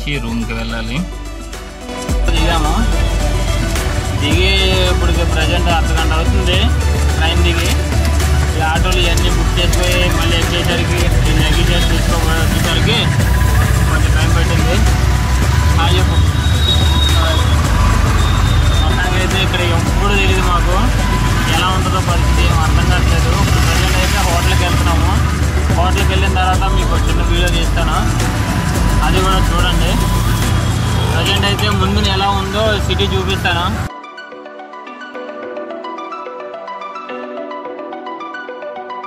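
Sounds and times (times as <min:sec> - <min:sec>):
engine and road rumble: 0:00.0 - 0:33.9
music: 0:00.0 - 0:39.0
voices: 0:02.2 - 0:33.9.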